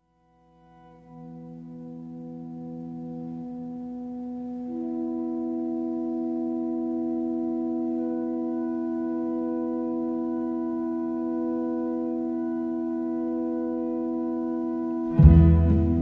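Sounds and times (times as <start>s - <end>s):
faint high notes: 0.0s - 16.0s
held chord of pure tones: 0.0s - 16.0s.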